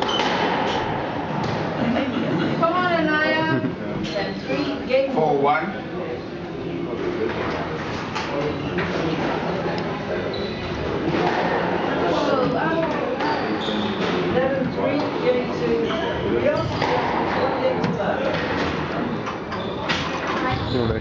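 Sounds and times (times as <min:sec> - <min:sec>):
squash ball hitting racquets and walls: 0:00.0 - 0:01.8, 0:11.0 - 0:14.8, 0:16.6 - 0:19.1
chatter of voices: 0:01.0 - 0:21.0.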